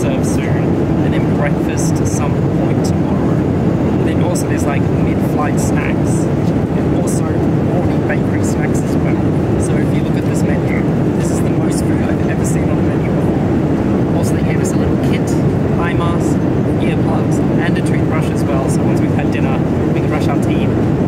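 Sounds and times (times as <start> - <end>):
airliner cabin rumble: 0.0 - 21.0.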